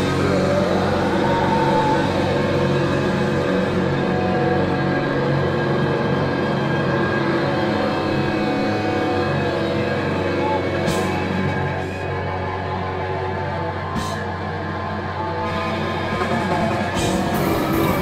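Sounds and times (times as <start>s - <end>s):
metal band playing distorted chords: 0.0s - 18.0s.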